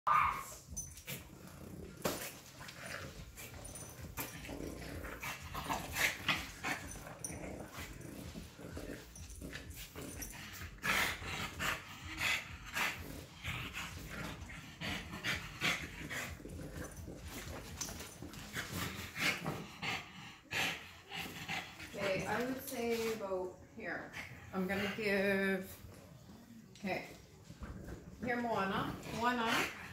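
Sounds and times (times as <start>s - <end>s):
puppies scuffling: 15.8s - 19.6s.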